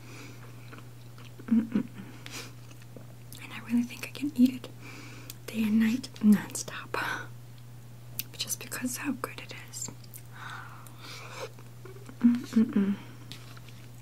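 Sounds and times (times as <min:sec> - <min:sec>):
steady low hum: 0:00.0 - 0:14.0
person humming mm: 0:01.4 - 0:02.1, 0:11.3 - 0:13.3
chewing and wet mouth clicks: 0:09.9 - 0:11.0.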